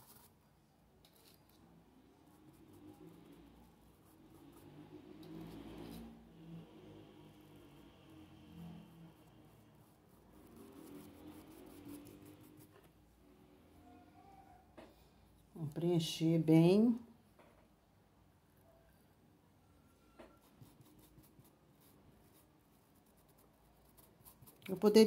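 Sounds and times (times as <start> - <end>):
paintbrush scrubbing fabric: 0.0 - 0.4, 2.2 - 12.9, 20.4 - 25.0.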